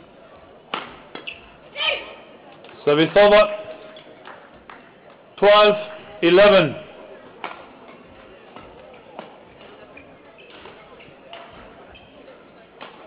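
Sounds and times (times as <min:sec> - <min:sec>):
murmur of spectators: 0:00.0 - 0:13.0.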